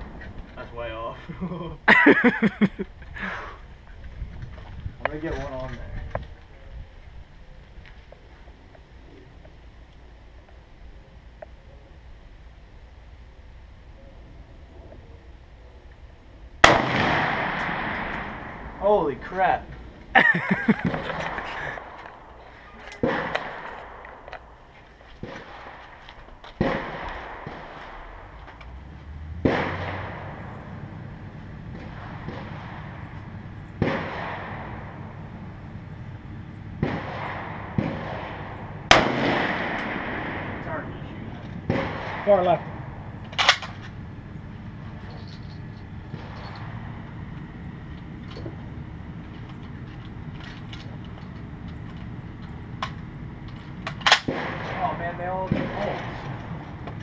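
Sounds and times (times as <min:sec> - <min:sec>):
quiet outdoor background: 0:00.0 - 0:57.0
rifle shot with echo: 0:16.6 - 0:18.8, 0:23.0 - 0:24.3, 0:26.6 - 0:28.3, 0:29.4 - 0:30.7, 0:31.7 - 0:33.1, 0:33.8 - 0:35.2, 0:36.8 - 0:40.9, 0:41.6 - 0:43.8, 0:54.0 - 0:56.4.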